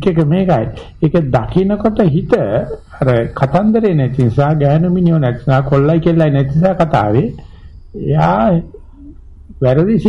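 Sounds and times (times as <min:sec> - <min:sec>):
man speaking: 0:00.0 - 0:07.4, 0:08.0 - 0:10.0.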